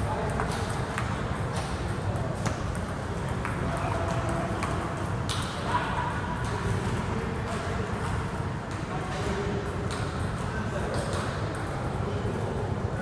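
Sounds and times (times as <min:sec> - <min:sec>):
table tennis balls clicking: 0:00.0 - 0:11.8.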